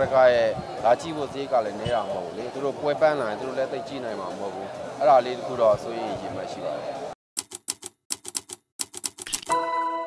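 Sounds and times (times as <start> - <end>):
typewriter key clicks: 7.4 - 9.6.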